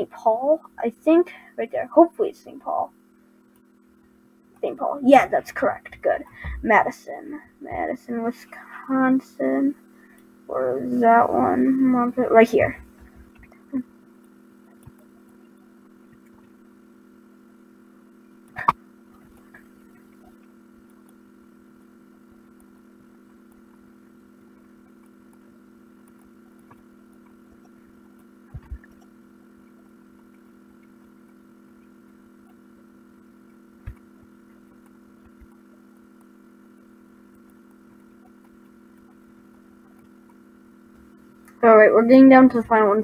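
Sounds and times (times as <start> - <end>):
faint electrical hum: 0.0 - 43.0.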